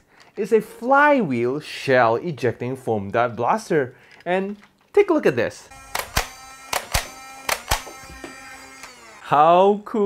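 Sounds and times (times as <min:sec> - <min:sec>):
steady humming tone: 0:05.7 - 0:09.3
foam dart blaster shots: 0:05.9 - 0:08.0.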